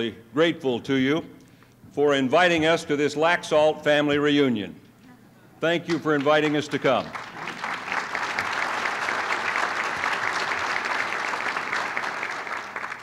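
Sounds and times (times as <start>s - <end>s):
audience applauding: 6.0s - 13.0s.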